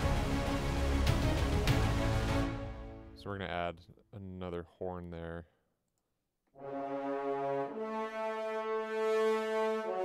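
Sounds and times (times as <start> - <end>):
french horns sustained chords: 6.6 - 10.0.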